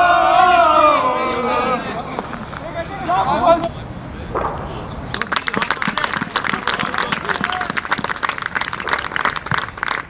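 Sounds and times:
people clapping: 5.1 - 10.0.

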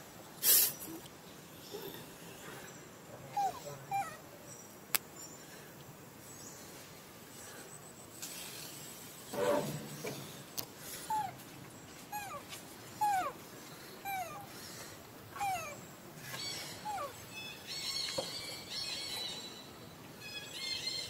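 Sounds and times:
infant monkey crying: 3.2 - 4.3, 12.1 - 13.4, 14.0 - 14.5, 15.3 - 19.5
monkey whimpering coos: 3.3 - 4.2, 12.1 - 12.4, 13.0 - 13.4, 14.0 - 14.5, 15.4 - 15.8, 16.7 - 17.2.

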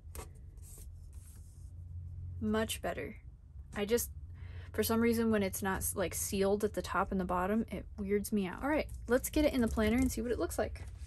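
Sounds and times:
steady low hum: 0.0 - 11.0
paper rubbing: 0.2 - 1.7.

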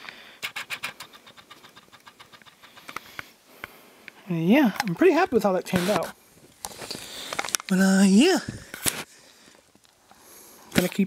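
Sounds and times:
faint irregular clicks: 0.0 - 4.2
low hiss: 0.0 - 11.0.

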